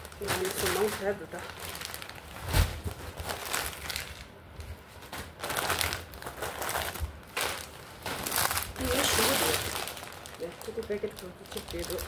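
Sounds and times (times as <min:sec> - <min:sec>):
plastic packets crinkling: 0:00.0 - 0:12.0.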